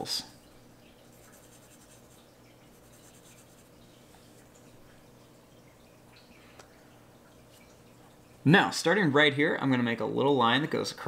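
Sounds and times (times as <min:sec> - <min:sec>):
marker scratching on paper: 0:01.1 - 0:03.7.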